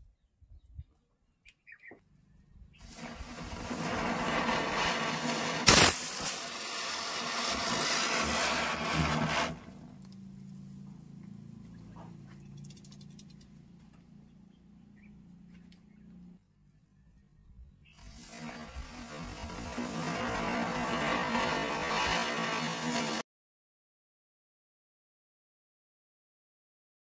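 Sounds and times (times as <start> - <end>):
firecracker bang: 2.8 - 10.1, 18.2 - 23.2
firecracker hissing: 2.8 - 10.2, 17.9 - 23.2
faint crackles: 2.8 - 14.1.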